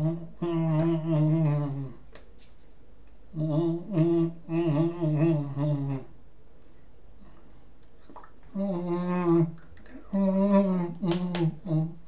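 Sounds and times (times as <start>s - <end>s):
man humming: 0.0s - 2.1s, 3.3s - 6.2s, 8.5s - 12.0s.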